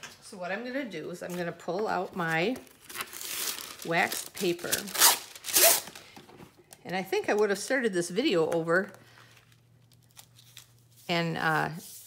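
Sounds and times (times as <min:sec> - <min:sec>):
waxed paper crinkling: 0:09.0 - 0:12.0.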